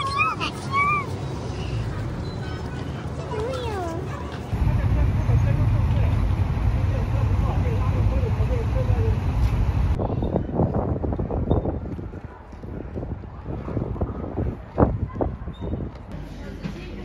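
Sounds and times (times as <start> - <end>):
outdoor ambience: 0.0 - 17.0
road noise: 0.0 - 17.0
wind buffeting microphone: 4.5 - 16.1.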